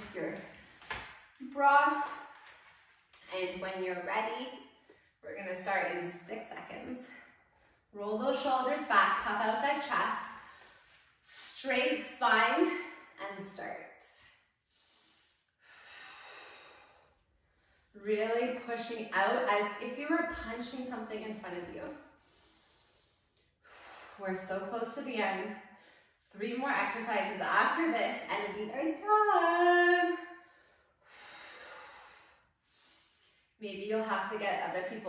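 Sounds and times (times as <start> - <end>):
woman speaking: 0.0 - 0.4, 1.4 - 2.2, 3.2 - 4.5, 5.2 - 7.1, 8.0 - 10.4, 11.3 - 13.8, 18.0 - 21.9, 24.2 - 25.5, 26.4 - 30.2, 33.6 - 35.0
woman breathing: 10.4 - 11.1, 14.7 - 18.0, 22.1 - 24.2, 30.4 - 33.6.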